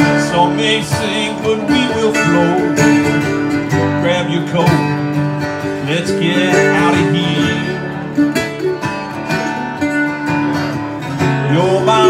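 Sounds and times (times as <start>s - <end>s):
acoustic guitar strumming: 0.0s - 12.0s
second guitar playing: 0.0s - 12.0s.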